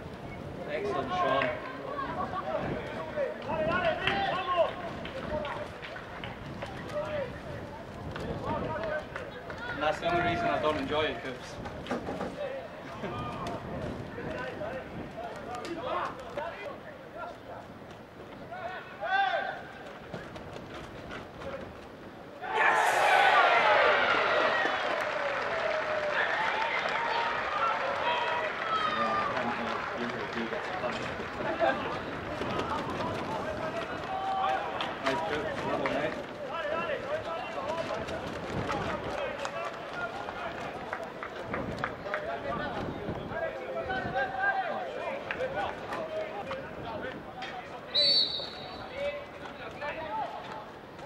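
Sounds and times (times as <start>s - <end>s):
thin crowd: 0.0s - 51.0s
running footsteps: 19.4s - 23.4s, 25.6s - 51.0s
players shouting: 22.4s - 30.7s.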